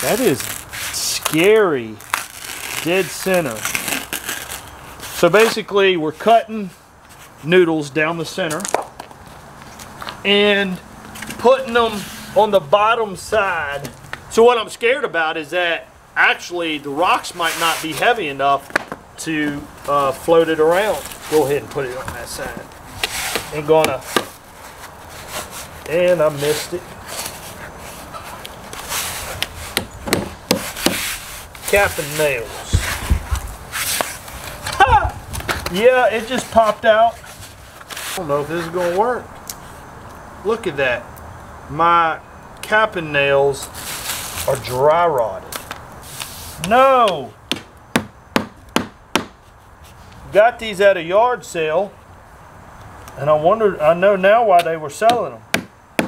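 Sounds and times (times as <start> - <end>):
hammer striking nail: 47.5 - 49.4, 55.1 - 56.0.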